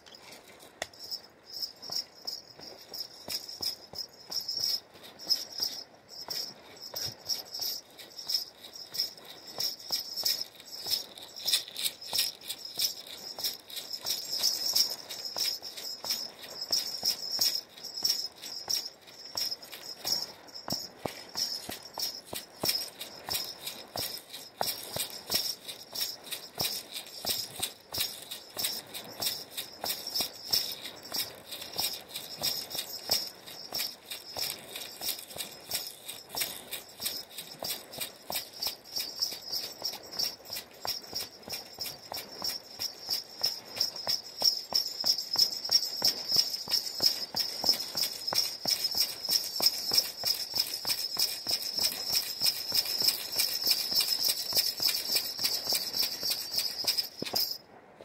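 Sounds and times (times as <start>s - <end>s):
ankle bells jingling: 0.0s - 57.6s.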